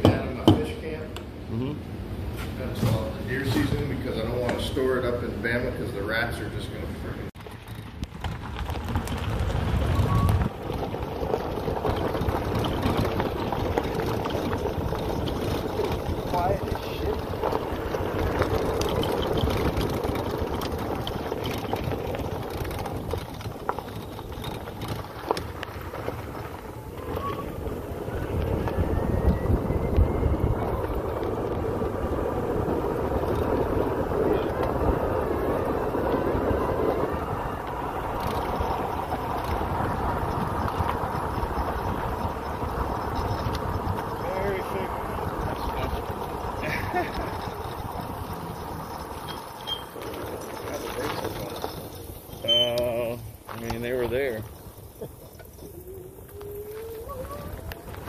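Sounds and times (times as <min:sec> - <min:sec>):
golf cart driving on gravel: 0:02.0 - 0:58.0.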